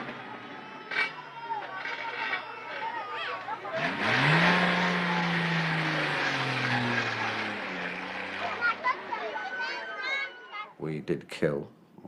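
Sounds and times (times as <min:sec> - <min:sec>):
loud engine passing by: 0:00.0 - 0:10.2.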